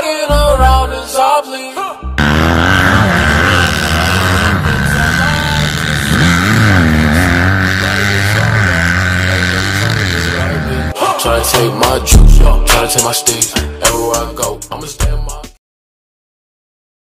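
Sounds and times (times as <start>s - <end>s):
dirt bike engines revving: 2.2s - 11.0s.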